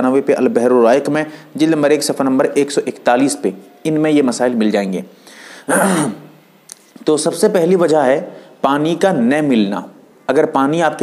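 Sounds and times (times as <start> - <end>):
man clearing his throat: 5.7 - 6.3.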